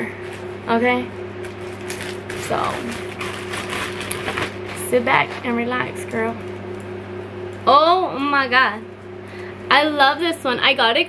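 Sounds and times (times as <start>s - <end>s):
electric fan humming: 0.0s - 11.0s
plastic bag crinkling: 1.4s - 5.6s.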